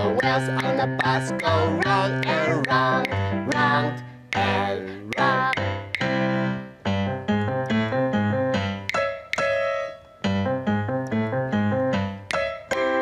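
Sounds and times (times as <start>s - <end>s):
bouncy keyboard melody: 0.0s - 13.0s.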